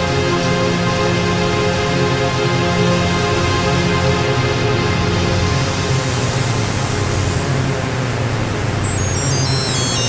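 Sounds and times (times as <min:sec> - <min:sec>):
ambient synthesizer music: 0:05.6 - 0:10.0.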